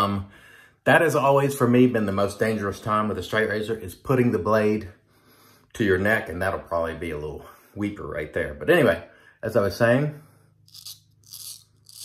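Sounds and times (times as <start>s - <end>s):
razor scraping stubble: 10.7s - 12.0s.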